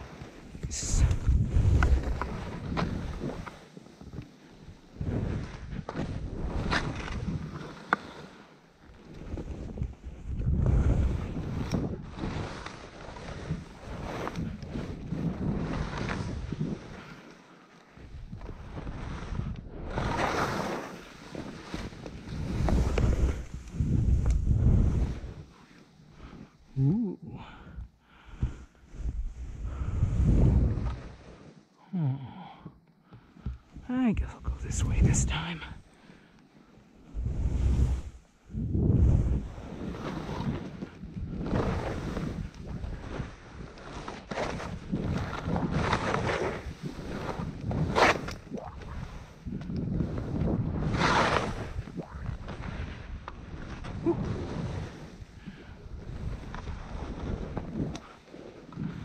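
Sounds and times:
wind rumbling on microphone: 0:00.0 - 0:07.7, 0:08.9 - 0:17.2, 0:18.0 - 0:31.3, 0:33.4 - 0:35.9, 0:37.0 - 0:59.0
skis carving through snow: 0:00.0 - 0:26.9, 0:27.5 - 0:31.7, 0:36.6 - 0:59.0.

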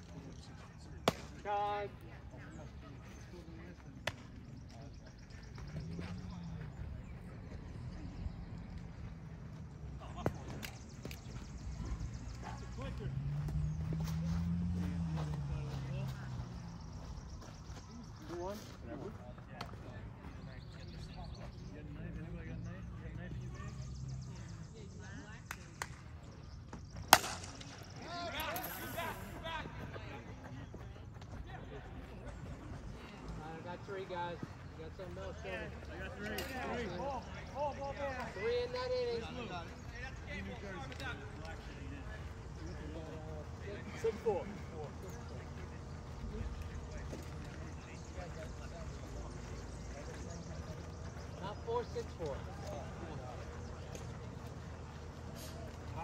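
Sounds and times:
faint voices: 0:00.0 - 0:56.0
bat hitting ball crack: 0:27.1 - 0:27.8
players shouting: 0:27.1 - 0:56.0.

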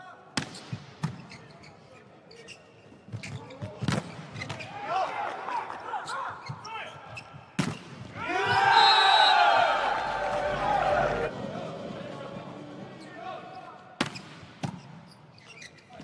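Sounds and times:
shoe squeaks: 0:01.1 - 0:03.8, 0:13.5 - 0:16.0.

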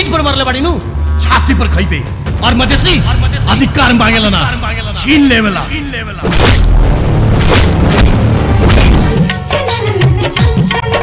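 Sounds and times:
dramatic trailer music: 0:00.0 - 0:09.5
sharp impacts: 0:02.4 - 0:09.3.

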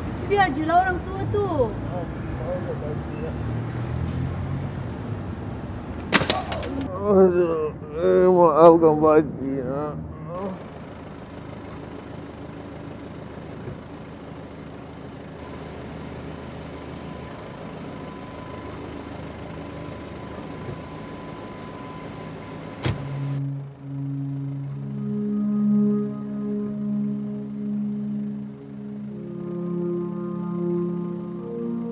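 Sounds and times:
street background noise: 0:00.0 - 0:31.9
soft music of held tones: 0:19.5 - 0:31.9
car door shutting: 0:20.5 - 0:21.0, 0:21.7 - 0:23.4.

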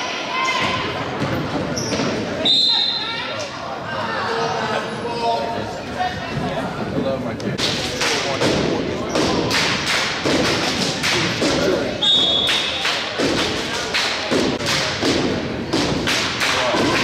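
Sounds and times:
rhythmic stomps and claps: 0:07.6 - 0:17.0
short high whistle: 0:12.0 - 0:12.7.

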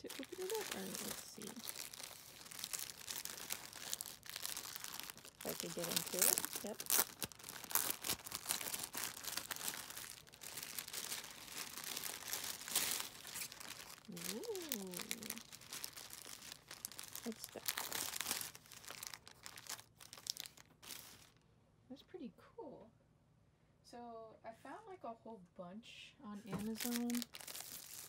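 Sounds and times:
plastic packaging crinkling: 0:00.0 - 0:21.4, 0:26.5 - 0:28.0.

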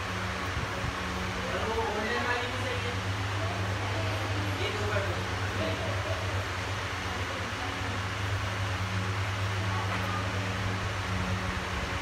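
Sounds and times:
low electric hum: 0:00.0 - 0:12.0.

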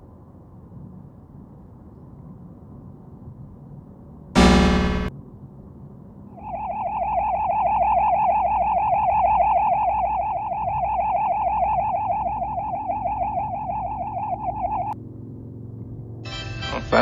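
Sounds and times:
high warbling tone: 0:04.4 - 0:05.1, 0:06.4 - 0:15.0.

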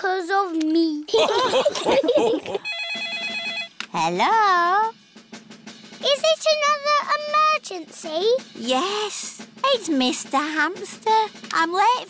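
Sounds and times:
burst of laughter: 0:01.1 - 0:02.6
cartoon phone ringing: 0:02.6 - 0:03.8.

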